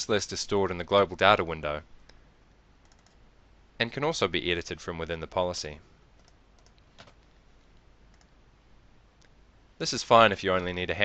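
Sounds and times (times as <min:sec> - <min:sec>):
computer mouse clicks: 0:02.8 - 0:03.2, 0:06.2 - 0:08.4.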